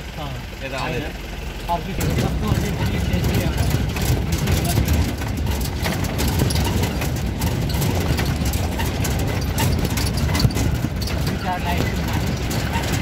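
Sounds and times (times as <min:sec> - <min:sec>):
vehicle engine and road rumble: 0:00.0 - 0:13.0
small knocks and rattles: 0:02.0 - 0:13.0.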